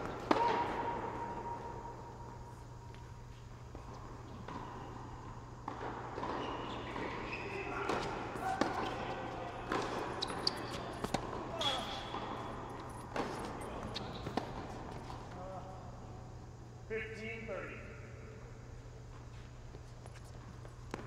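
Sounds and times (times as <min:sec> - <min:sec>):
tennis ball struck and bouncing: 0:00.0 - 0:02.0, 0:05.6 - 0:07.2
shoes squeaking on court: 0:00.0 - 0:15.6, 0:19.0 - 0:21.0.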